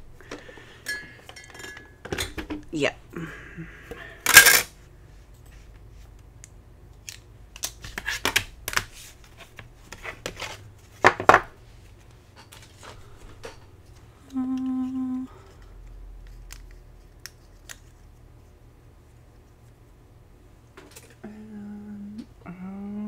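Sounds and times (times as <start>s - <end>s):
machine low hum: 11.6s - 17.1s, 17.9s - 23.0s.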